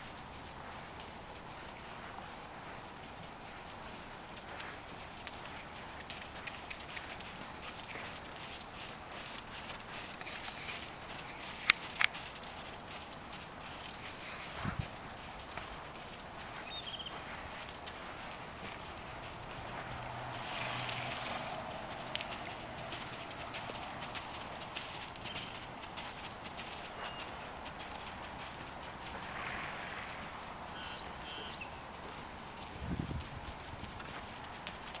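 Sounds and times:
horse hoofbeats on sand: 0:00.0 - 0:35.0.

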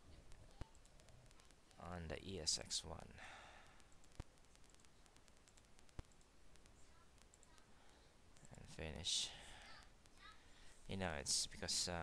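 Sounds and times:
computer mouse clicks: 0:00.4 - 0:01.8, 0:03.7 - 0:08.6
man speaking: 0:01.8 - 0:03.4, 0:08.4 - 0:09.6, 0:10.9 - 0:12.0.

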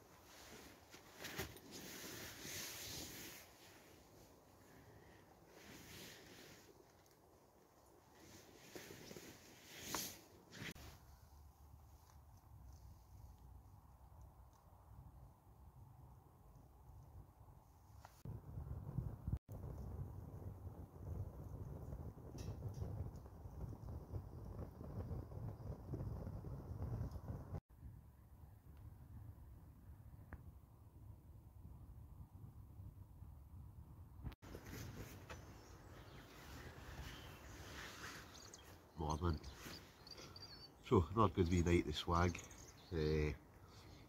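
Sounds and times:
rustling: 0:00.0 - 0:13.8, 0:34.4 - 0:40.4
fire crackling: 0:00.2 - 0:11.3, 0:18.6 - 0:27.6
fire rumbling in chimney: 0:18.3 - 0:27.6.

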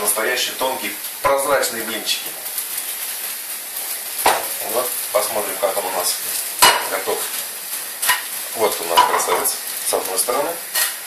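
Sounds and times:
batter sizzling in a frying pan: 0:00.0 - 0:11.0.

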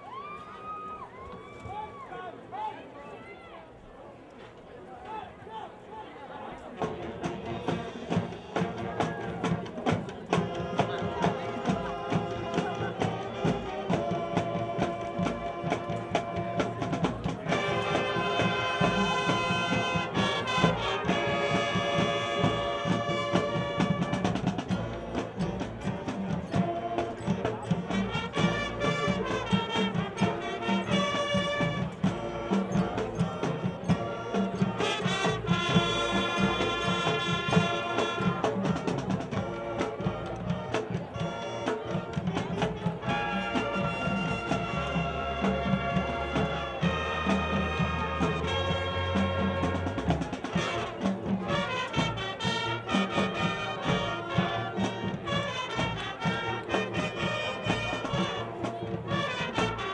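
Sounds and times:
marching band playing: 0:06.8 - 0:59.9.

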